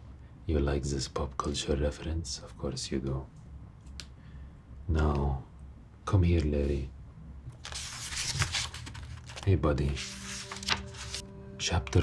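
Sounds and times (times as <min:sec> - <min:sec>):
low steady hum: 0:00.0 - 0:12.0
rustling and crackling handling noise: 0:07.5 - 0:11.2.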